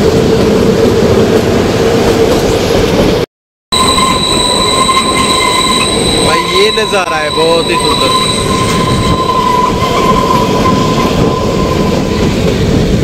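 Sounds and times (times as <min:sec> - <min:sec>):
high wheel squeal: 0:03.7 - 0:12.8
train wheels on rails: 0:03.8 - 0:13.0.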